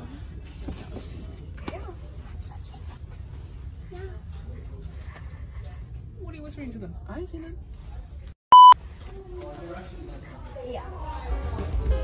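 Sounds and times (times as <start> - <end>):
censor bleep: 8.5 - 8.8.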